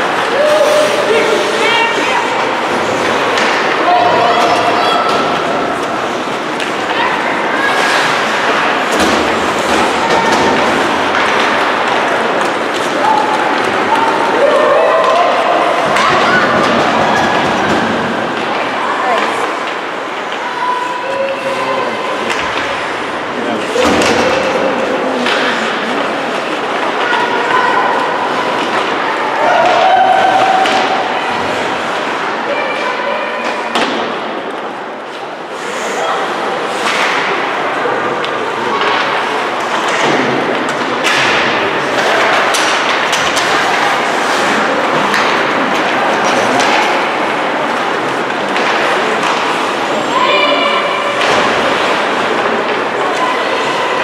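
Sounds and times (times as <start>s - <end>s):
shouts and chatter: 0.0s - 54.0s
puck and sticks hitting boards: 2.4s - 20.4s, 22.2s - 22.9s, 23.7s - 32.3s, 33.4s - 34.4s, 36.7s - 37.6s, 38.2s - 50.2s, 51.2s - 53.8s.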